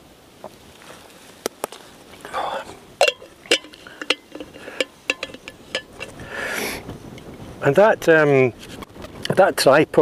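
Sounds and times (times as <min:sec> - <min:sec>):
metal bottle cap clicking: 0:03.0 - 0:06.2.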